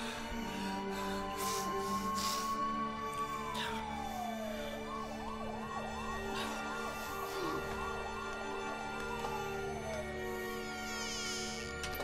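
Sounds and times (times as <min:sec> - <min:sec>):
emergency siren yelping: 0:00.0 - 0:12.0
steady music drone: 0:00.0 - 0:12.0.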